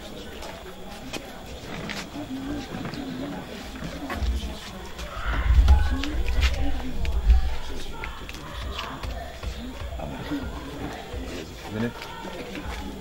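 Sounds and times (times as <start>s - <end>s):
wordless human voices: 0.0s - 13.0s.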